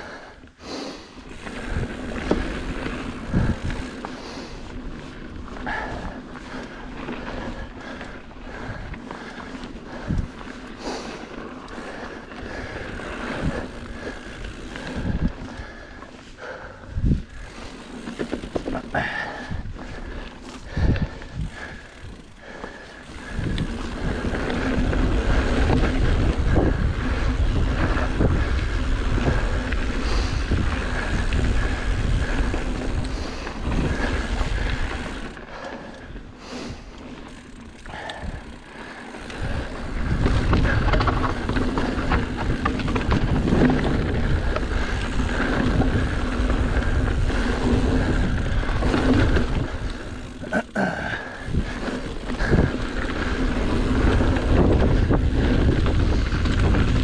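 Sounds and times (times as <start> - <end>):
bike tyre noise on trail: 0.0 - 57.0
wind noise on microphone: 1.2 - 6.2, 9.8 - 10.9, 12.0 - 15.9, 16.8 - 35.5, 37.9 - 57.0
bike knocking over bumps: 40.1 - 44.7.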